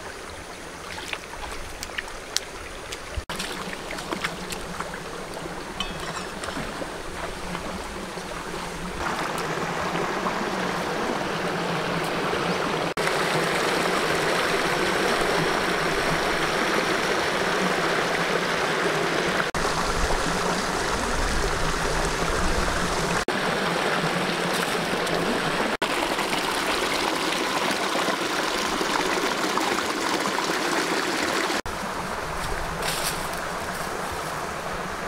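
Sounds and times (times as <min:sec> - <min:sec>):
stream water rushing over rocks: 0:00.0 - 0:35.0.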